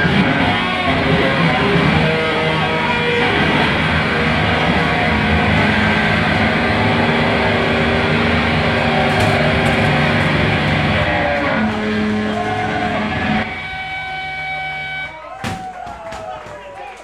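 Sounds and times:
loud distorted live band: 0.0 - 15.3.

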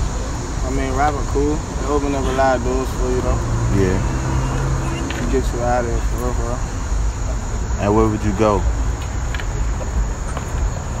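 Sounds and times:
high-pitched insect drone: 0.0 - 8.8.

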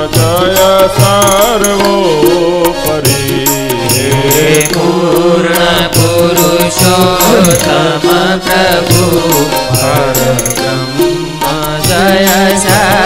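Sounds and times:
light percussion strikes: 0.0 - 13.0
person singing ornamented melody: 0.0 - 13.0
sustained accompaniment: 0.0 - 13.0.

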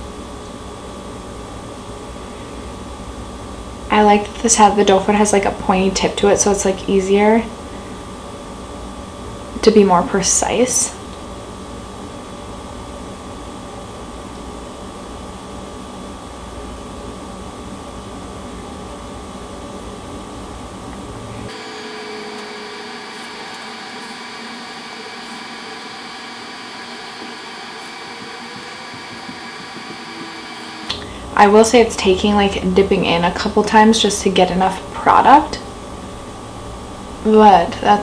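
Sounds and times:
room noise hum and hiss: 0.0 - 38.0
steady fan-like tones: 0.0 - 38.0.

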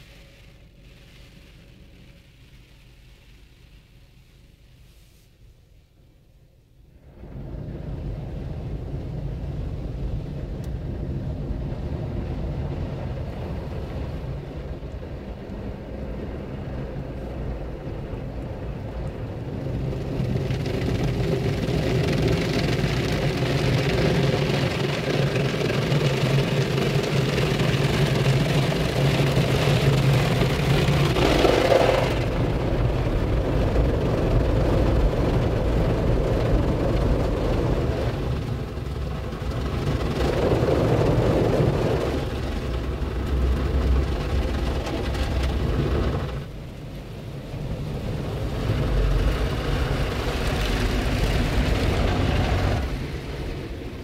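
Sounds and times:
car wash spray drumming on car: 0.0 - 5.4, 7.3 - 54.0.

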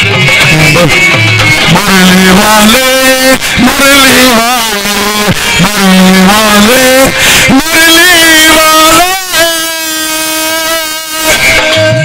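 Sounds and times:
man singing a long high note: 0.4 - 12.0.

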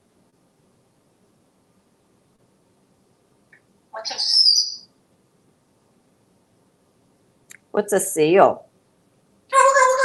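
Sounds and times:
parrot whistling upward: 4.0 - 4.9.

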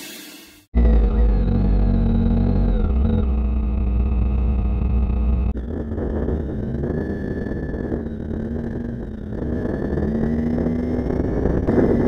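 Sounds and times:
faint falling whine: 0.8 - 12.0
motorcycle engine running: 0.8 - 12.0.

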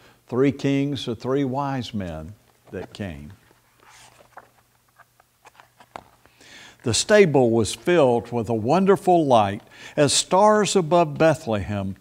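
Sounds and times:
book pages flipping: 2.5 - 6.4.

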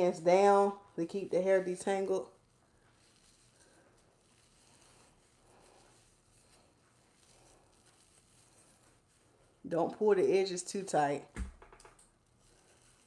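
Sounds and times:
soft rustling of hair: 0.0 - 13.0.

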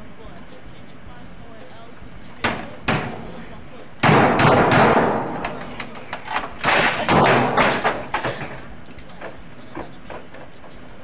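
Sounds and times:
keyboard slamming against desk: 4.0 - 8.6.

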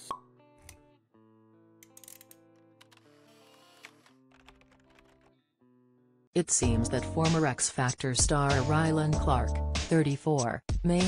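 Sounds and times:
soft background music: 6.4 - 11.0.

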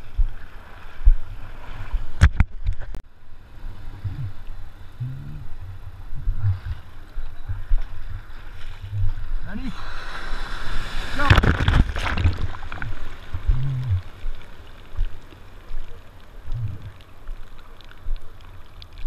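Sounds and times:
surf sloshing and gurgling: 0.0 - 19.0
sharp water splashes: 6.3 - 19.0
wave whitewash rushing: 9.2 - 16.5.

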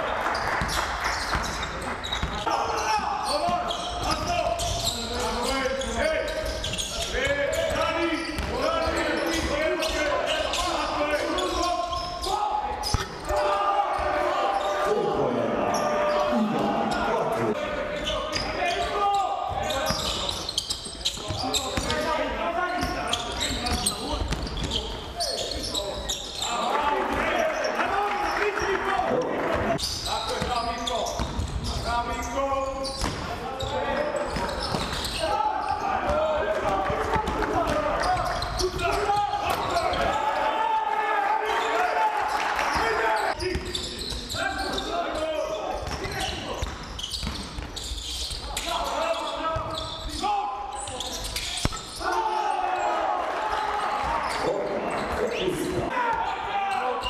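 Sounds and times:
basketball bouncing on court: 0.6 - 2.5, 8.4 - 9.9, 30.4 - 31.8, 45.8 - 47.9.

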